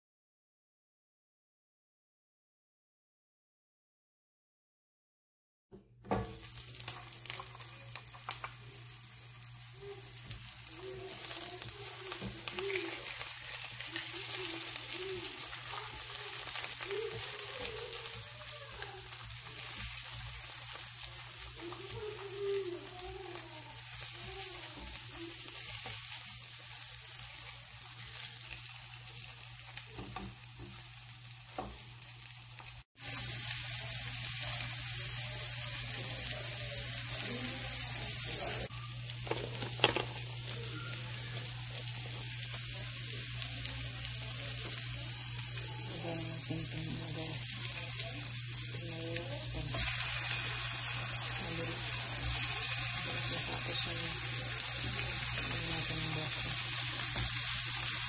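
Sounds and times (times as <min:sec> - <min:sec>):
hot dogs sizzling in oil: 0:06.0 - 0:58.0.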